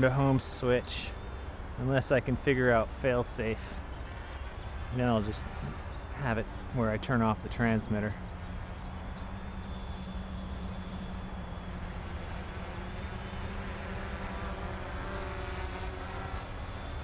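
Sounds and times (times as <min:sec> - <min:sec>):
quadcopter motors buzzing: 0:00.0 - 0:17.0.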